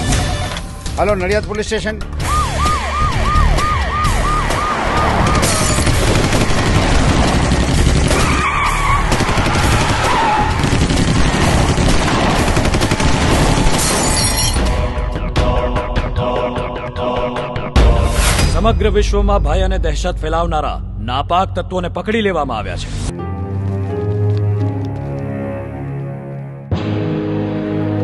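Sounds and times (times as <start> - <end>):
loud action music: 0.0 - 19.2, 26.7 - 28.0
police siren: 2.2 - 5.9
gunshots: 4.4 - 14.5.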